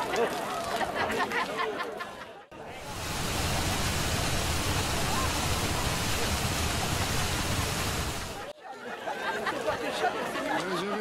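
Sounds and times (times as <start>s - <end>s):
pouring splashing water: 2.7s - 8.5s.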